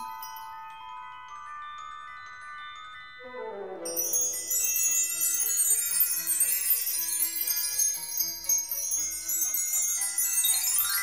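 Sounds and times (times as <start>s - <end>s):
magic sparkle chimes: 0.0s - 11.0s.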